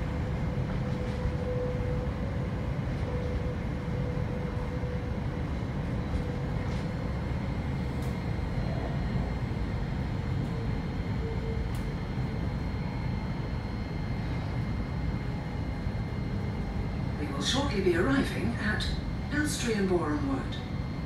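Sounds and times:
train interior low rumble: 0:00.0 - 0:21.0
faint high whine: 0:00.2 - 0:21.0.

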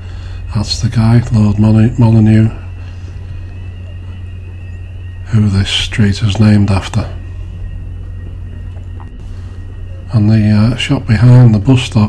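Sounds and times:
faint high whine: 0:00.0 - 0:12.0
low rumble of street traffic: 0:00.0 - 0:12.0.

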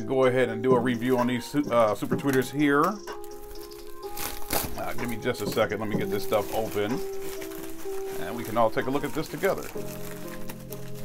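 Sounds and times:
soft background music: 0:00.0 - 0:11.0
plastic mailer crinkling open: 0:03.2 - 0:11.0.

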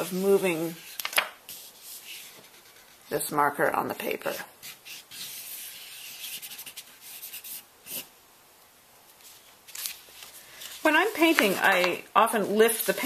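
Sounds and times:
marker scratching on paper: 0:00.0 - 0:03.2, 0:04.3 - 0:08.1.

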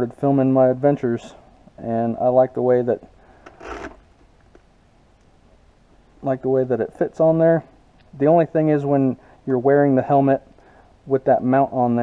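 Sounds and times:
plastic scrape: 0:03.4 - 0:04.1.

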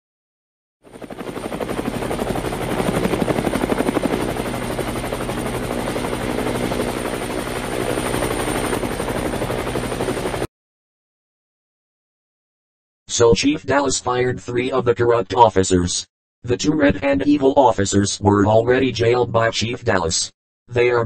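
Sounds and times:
helicopter rotor chopping: 0:00.8 - 0:10.5.

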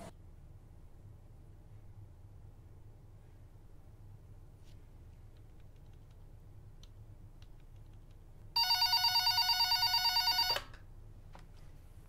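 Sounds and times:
electronic telephone ringing: 0:08.6 - 0:10.7.

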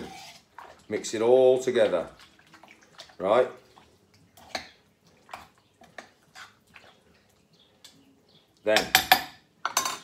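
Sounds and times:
wet squelches of stirring: 0:00.0 - 0:09.7.

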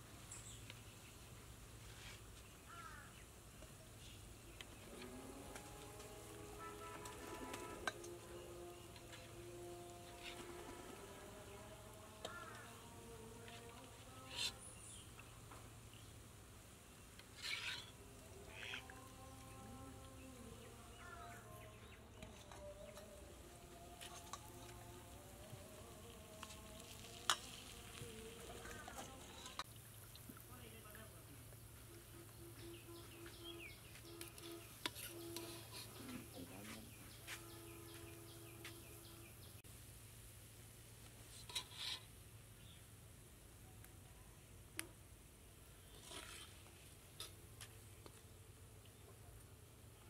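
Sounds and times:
metal spoon scraping a pot: 0:17.2 - 0:18.8, 0:34.3 - 0:36.3, 0:41.3 - 0:42.1
fritters sizzling in oil: 0:23.3 - 0:30.8, 0:33.3 - 0:38.9
small birds chirping: 0:23.8 - 0:39.6.

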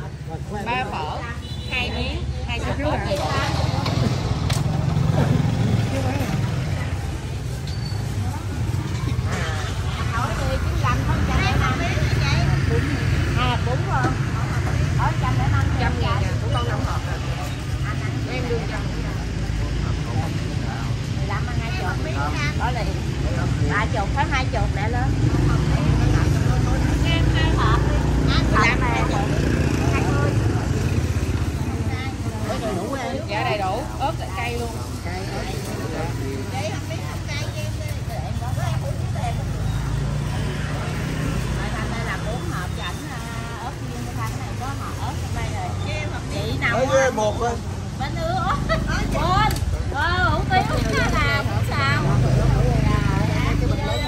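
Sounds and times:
low road traffic rumble: 0:00.0 - 0:54.0
people talking: 0:00.0 - 0:54.0.

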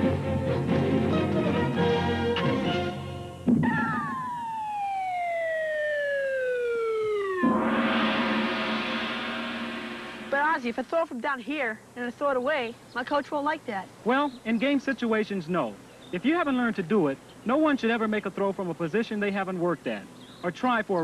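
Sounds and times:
light music: 0:00.0 - 0:04.2
cartoon falling whistle: 0:03.6 - 0:09.5
ringing crash: 0:07.2 - 0:10.7.

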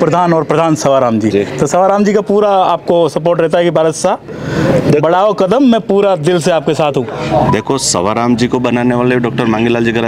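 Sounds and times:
man speaking: 0:04.8 - 0:10.0.

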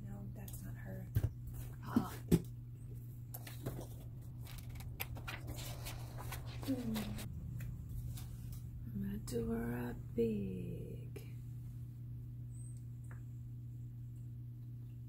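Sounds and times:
steady low hum: 0:00.0 - 0:15.0
paper rustling: 0:03.4 - 0:07.3.

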